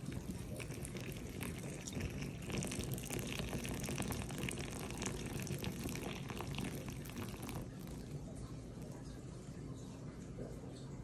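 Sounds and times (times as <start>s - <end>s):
liquid pouring into a glass: 0.0s - 9.2s.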